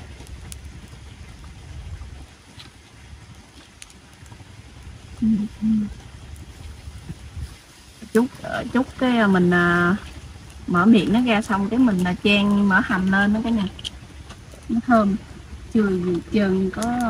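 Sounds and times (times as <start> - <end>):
low steady rumble: 0.0 - 17.0
short hummed vocal sounds: 5.2 - 6.0.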